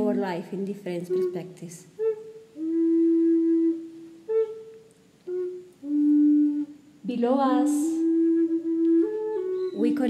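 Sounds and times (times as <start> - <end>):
flute playing slow melody: 1.1 - 10.0.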